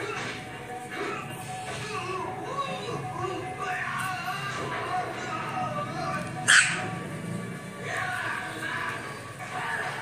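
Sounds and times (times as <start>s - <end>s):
background music: 0.0s - 10.0s
puppy yapping: 6.4s - 6.9s.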